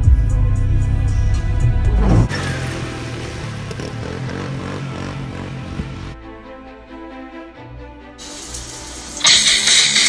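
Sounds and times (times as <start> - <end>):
toilet flushing: 8.2 - 10.0.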